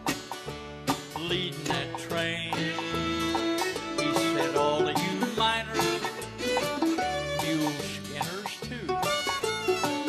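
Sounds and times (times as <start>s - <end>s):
fiddle: 0.0s - 10.0s
plucked strings: 0.0s - 10.0s.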